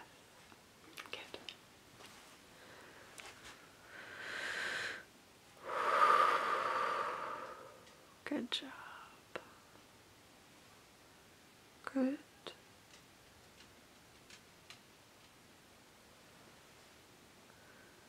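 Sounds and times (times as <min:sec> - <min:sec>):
deep breathing close up: 0:03.8 - 0:08.0.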